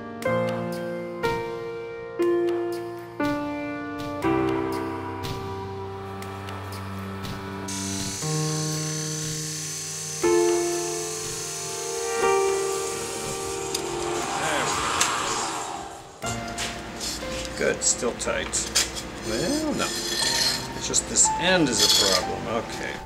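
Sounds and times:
slow piano music: 0.0 - 14.4, 16.2 - 23.0.

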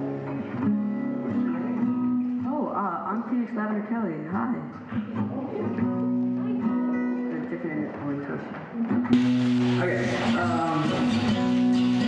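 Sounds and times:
acoustic guitar notes: 0.0 - 3.5, 4.1 - 12.0.

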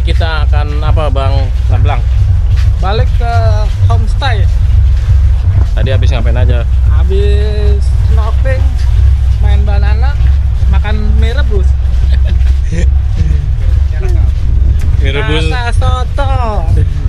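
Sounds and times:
man talking: 0.0 - 2.1, 2.8 - 4.5, 5.7 - 8.8, 9.4 - 17.0
loud low rumble: 0.0 - 17.0.

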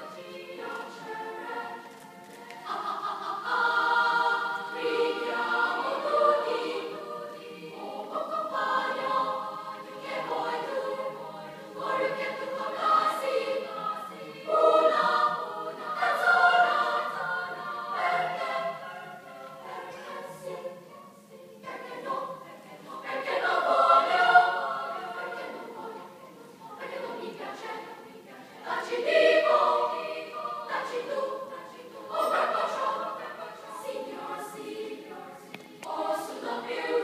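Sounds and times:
choir singing in parts: 0.0 - 37.0.

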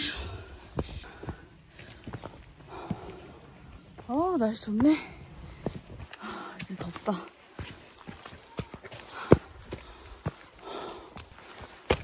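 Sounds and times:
footsteps on stone: 0.0 - 12.0.

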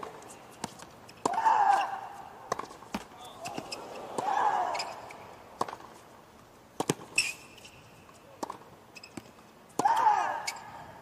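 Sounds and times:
tennis ball pops: 2.5 - 4.3, 6.8 - 7.2.

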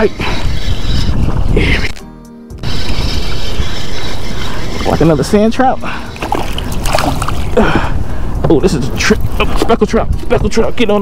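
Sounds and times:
background music: 0.0 - 10.8
wind buffeting microphone: 0.0 - 11.0.

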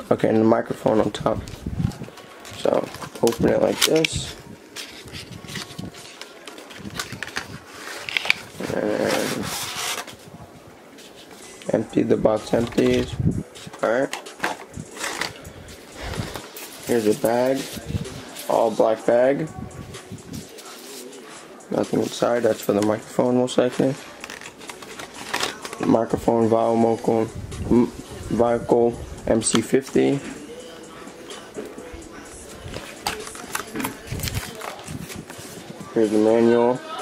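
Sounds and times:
person speaking: 0.0 - 6.9, 8.5 - 9.8, 11.4 - 14.1, 14.7 - 24.2, 25.3 - 37.0
plastic packaging crinkling: 24.0 - 25.8, 32.8 - 35.3.

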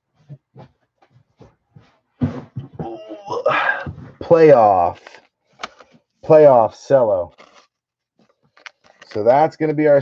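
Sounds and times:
person making vocal sounds: 2.8 - 4.0.

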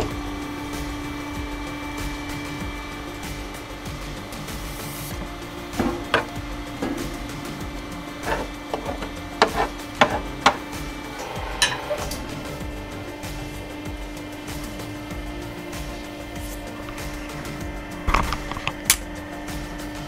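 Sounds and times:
background music: 0.0 - 20.0
steady hum: 0.0 - 20.0.

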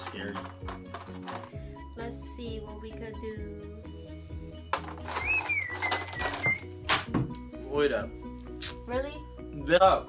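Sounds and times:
plastic tubes rattling in bowl: 0.0 - 1.6, 4.7 - 6.6
background music: 0.0 - 10.0.

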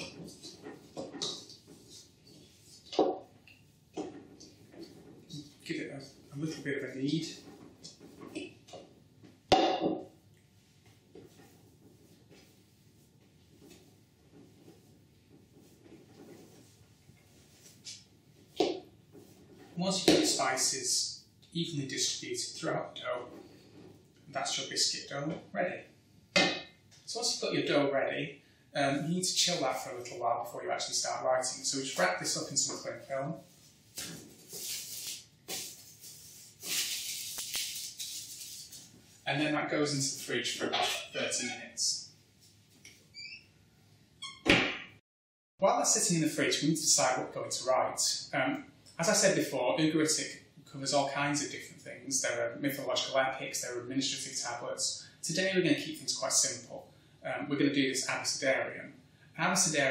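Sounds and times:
dough being kneaded: 0.0 - 20.7, 31.1 - 39.2
cling film crinkling: 34.0 - 39.0.

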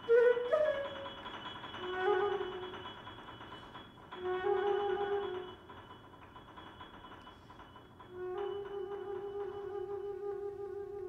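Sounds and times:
flute low held note: 8.2 - 11.0.

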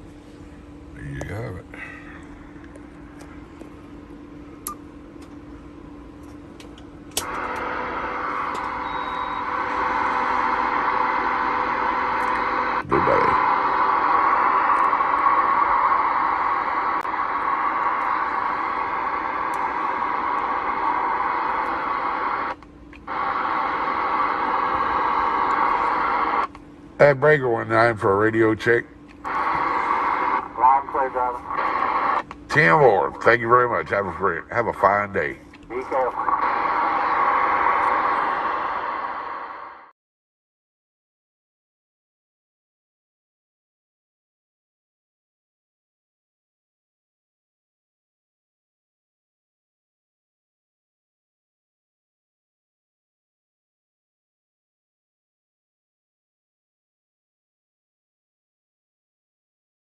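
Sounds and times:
radio switch click: 7.1 - 7.7
radio static hiss: 7.2 - 39.9
hissy voice over radio speaker: 12.4 - 15.0, 27.0 - 38.8.

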